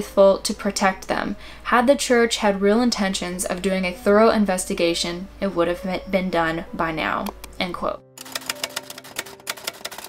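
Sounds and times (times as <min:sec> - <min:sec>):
typewriter keys clacking: 0:08.2 - 0:10.0.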